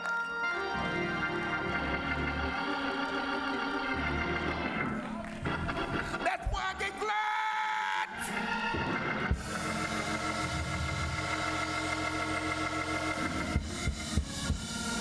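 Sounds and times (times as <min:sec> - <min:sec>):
organ holding chords: 0:00.0 - 0:15.0.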